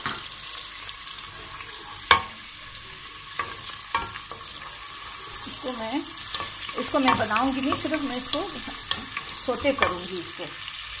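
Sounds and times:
onion sizzling in oil: 0:00.0 - 0:11.0.

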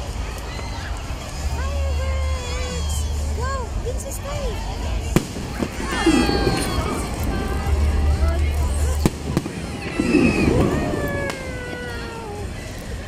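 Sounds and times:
people talking: 0:01.0 - 0:13.0
fireworks bursting with bangs: 0:05.0 - 0:13.0.

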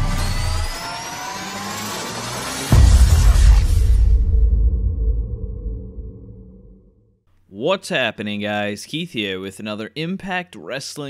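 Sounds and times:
rising synthetic sweep: 0:00.0 - 0:06.9
deep boom: 0:02.7 - 0:07.1.

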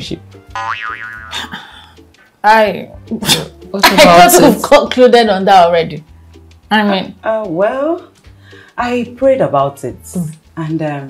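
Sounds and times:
soft background music: 0:00.0 - 0:11.0
cartoon boing sound effect: 0:00.5 - 0:01.5.

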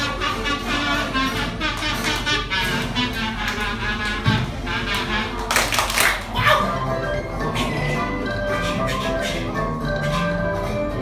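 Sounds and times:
music: 0:00.0 - 0:11.0
children clapping and calling out: 0:05.4 - 0:06.6.

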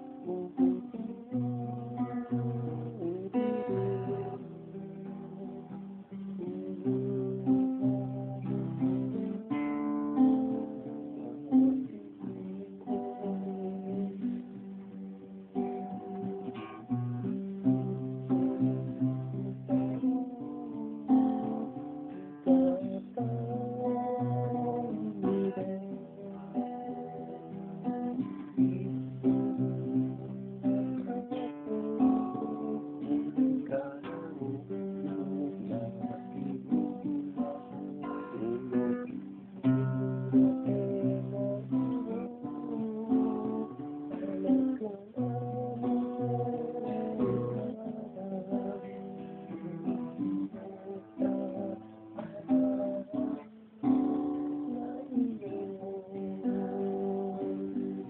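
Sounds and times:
guitar chords strummed: 0:00.0 - 0:58.0.

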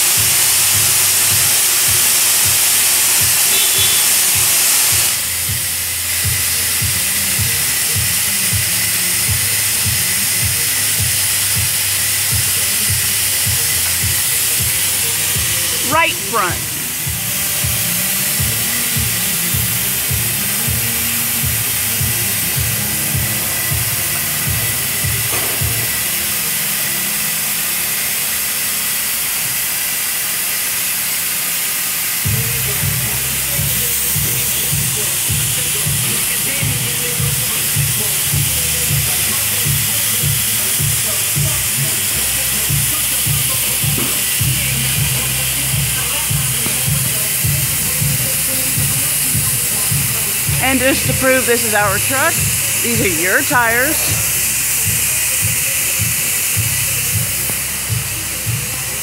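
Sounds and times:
steady loud hiss: 0:00.0 - 0:59.0.

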